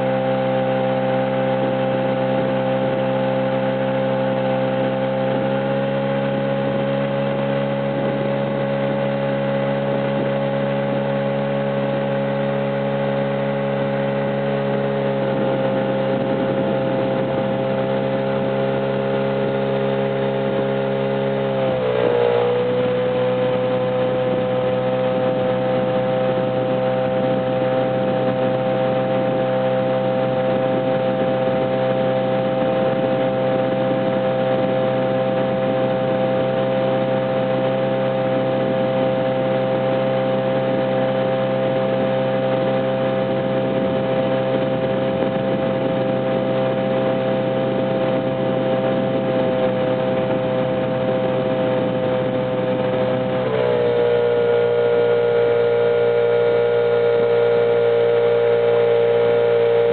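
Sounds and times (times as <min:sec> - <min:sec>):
outboard motor running: 0:00.0 - 0:59.9.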